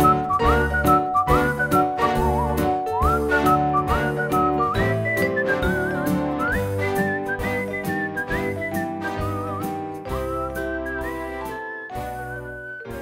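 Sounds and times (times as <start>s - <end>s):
whistled melody: 0.0s - 13.0s.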